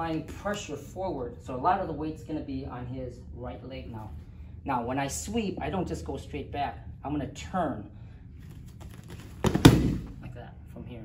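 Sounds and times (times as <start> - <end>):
body thudding on foam mats: 8.7 - 10.2.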